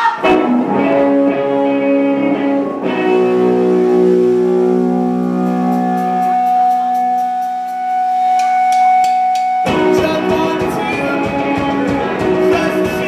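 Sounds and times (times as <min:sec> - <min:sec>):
electric guitar drone: 0:00.2 - 0:13.0.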